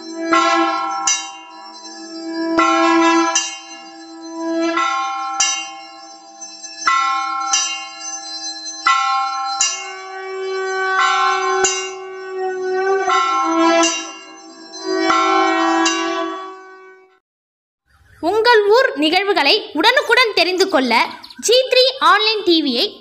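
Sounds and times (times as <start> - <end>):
brass temple bell ringing: 0.0 - 17.2.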